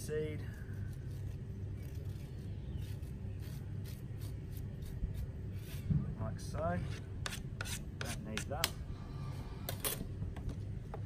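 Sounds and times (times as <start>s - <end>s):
steady low rumble: 0.0s - 7.6s
knife scraping seeds: 0.3s - 5.9s.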